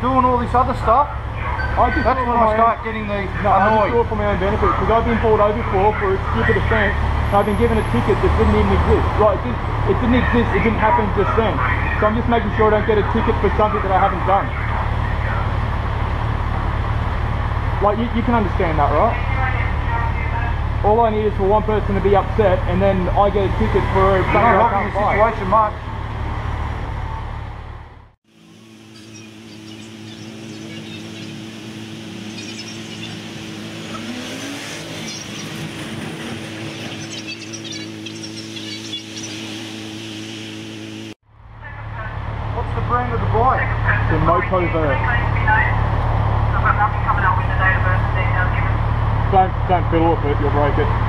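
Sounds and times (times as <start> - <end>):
low engine rumble: 0.0 - 34.0, 35.1 - 51.0
faint street noise: 0.0 - 40.0, 40.7 - 51.0.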